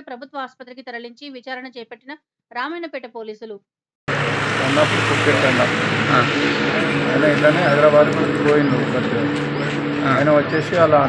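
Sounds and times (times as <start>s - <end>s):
engine-like hum: 4.1s - 11.0s
indistinct voices: 4.1s - 11.0s
traffic noise: 4.1s - 11.0s.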